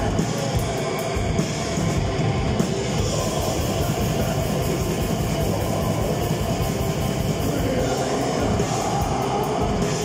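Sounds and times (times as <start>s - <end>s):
distorted electric guitar: 0.0s - 10.0s
fast drum beat with cymbals: 0.0s - 10.0s.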